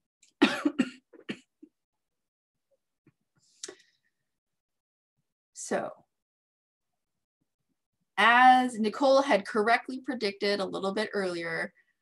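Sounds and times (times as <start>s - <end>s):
woman coughing: 0.4s - 1.6s.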